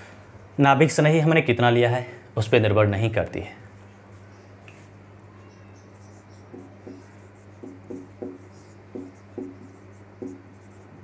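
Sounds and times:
steady low hum: 0.0s - 11.0s
marker squeaking on whiteboard: 5.3s - 11.0s.

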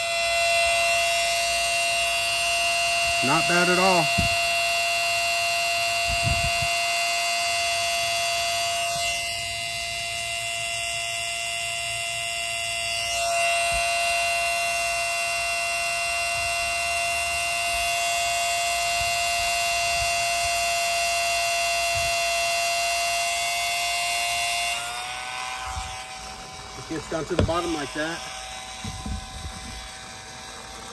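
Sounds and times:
electric water pump whining: 0.0s - 30.9s.

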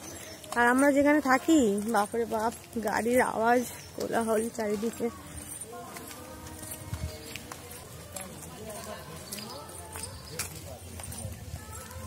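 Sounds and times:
faint distant voices: 0.0s - 12.0s
footsteps on dirt path: 0.0s - 12.0s.

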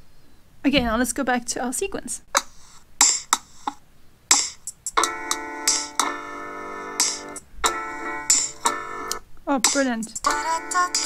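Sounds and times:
sustained piano chords: 5.0s - 9.2s.

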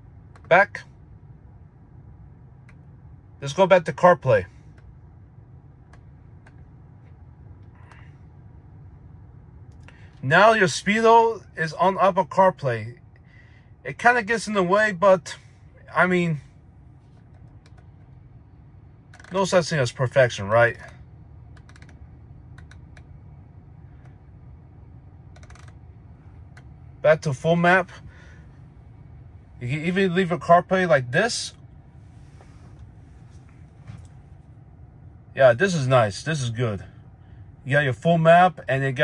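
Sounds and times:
low steady hum: 0.0s - 39.0s
scroll wheel clicks: 21.6s - 22.0s, 25.3s - 25.8s.

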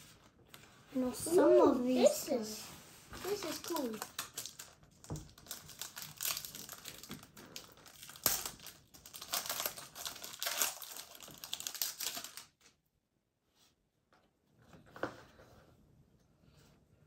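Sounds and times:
foil wrapper crinkling: 3.2s - 12.7s.

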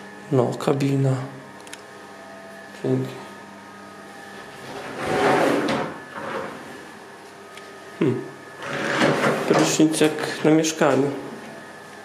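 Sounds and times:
shower door sliding open: 4.6s - 6.6s, 8.6s - 9.8s.

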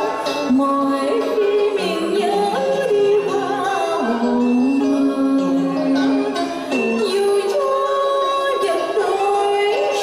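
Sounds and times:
woman singing into a microphone: 0.0s - 10.0s.

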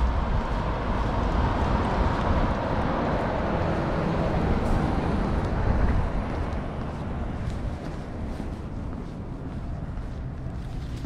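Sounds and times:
bus driving past: 0.0s - 11.0s.

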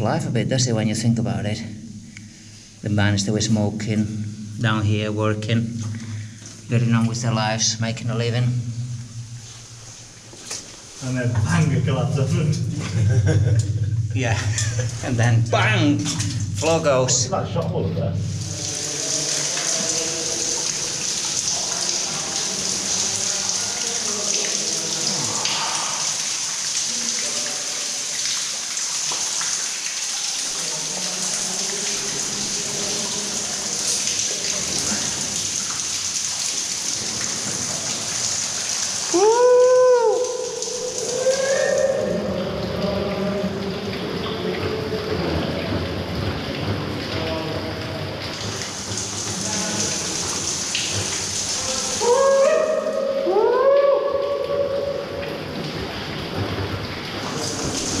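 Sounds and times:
water falling and splashing: 0.0s - 58.0s.

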